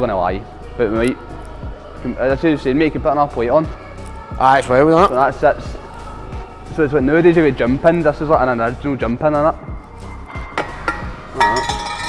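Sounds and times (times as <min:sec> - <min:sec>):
metal clang ringing: 0:10.3 - 0:12.0.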